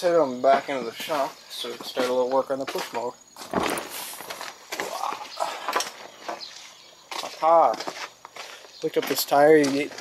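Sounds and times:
footsteps on gravel: 0:00.4 - 0:10.0.

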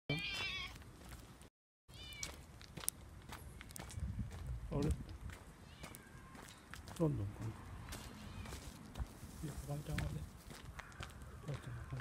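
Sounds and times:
cat meowing: 0:00.1 - 0:00.8, 0:01.9 - 0:02.3, 0:05.6 - 0:06.4, 0:08.1 - 0:08.7.

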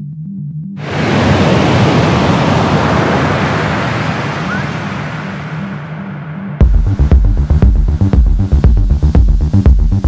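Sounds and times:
waves crashing: 0:00.8 - 0:07.0
low synth drone: 0:04.5 - 0:09.6.

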